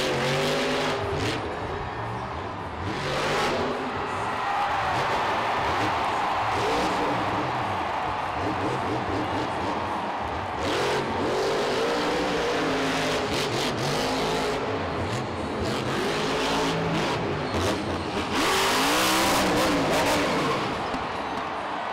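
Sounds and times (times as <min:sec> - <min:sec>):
truck engine revving hard: 0:10.5 - 0:20.9.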